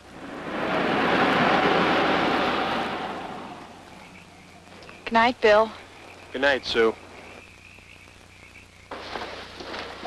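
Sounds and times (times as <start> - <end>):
film soundtrack hiss: 0.0 - 10.0
low hum: 0.0 - 10.0
night animal chorus trilling: 0.2 - 10.0.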